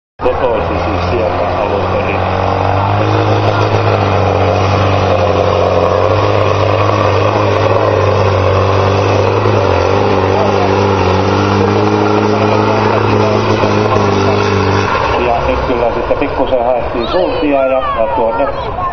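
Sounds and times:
tractor diesel engine under load: 0.2s - 18.9s.

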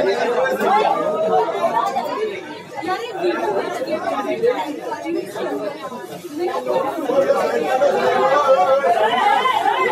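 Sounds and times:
crowd chatter: 0.0s - 9.9s.

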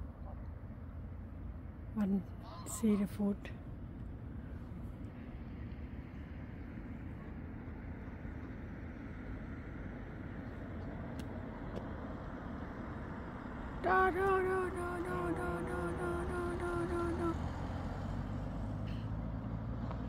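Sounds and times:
car approaching: 0.0s - 20.0s
road traffic hum: 0.0s - 20.0s.

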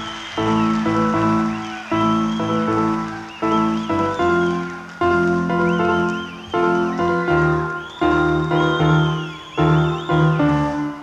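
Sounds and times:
electric keyboard chords: 0.0s - 11.0s.

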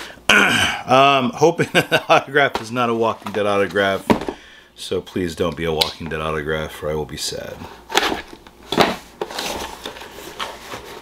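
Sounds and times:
cardboard box scraping on table: 7.9s - 11.0s.

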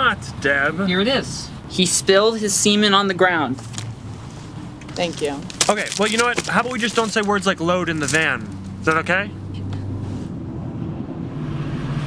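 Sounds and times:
van engine hum inside cabin: 3.7s - 12.0s.

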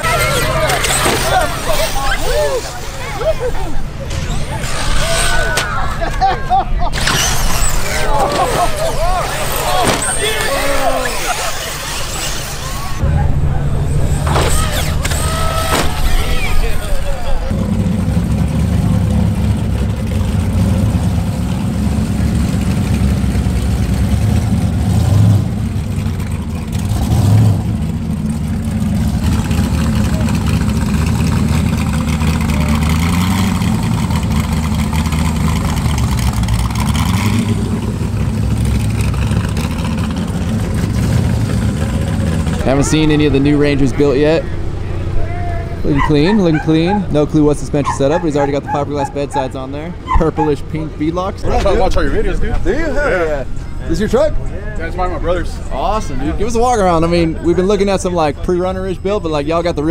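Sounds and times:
truck engine idling: 0.0s - 59.9s.

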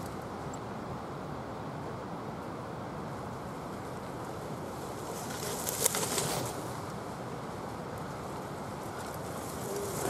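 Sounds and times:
steady outdoor hiss: 0.0s - 10.0s
bike tyres through dry leaves: 4.2s - 7.1s, 8.0s - 10.0s.

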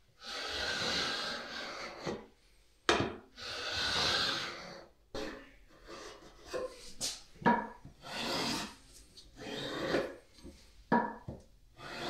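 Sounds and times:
marking gauge scratching wood: 0.2s - 2.2s, 8.0s - 8.8s, 9.4s - 10.2s, 11.8s - 12.0s.

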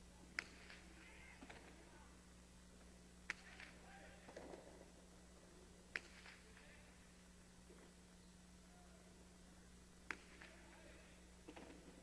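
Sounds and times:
faint court ambience: 0.0s - 12.0s
ball struck with sharp crack: 0.3s - 1.8s, 3.3s - 4.6s, 5.9s - 6.5s, 10.0s - 10.6s.

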